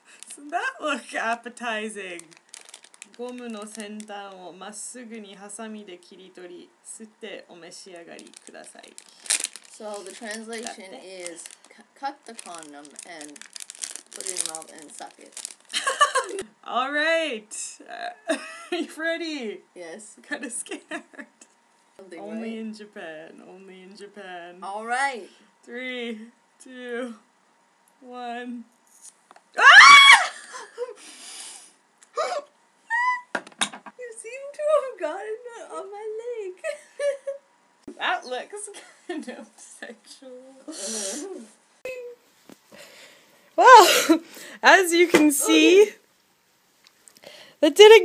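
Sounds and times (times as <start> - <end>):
plastic bag crinkling: 2.1 - 4.3, 8.2 - 16.4
woman shrieking: 29.6 - 30.5, 32.2 - 33.3, 43.6 - 44.2.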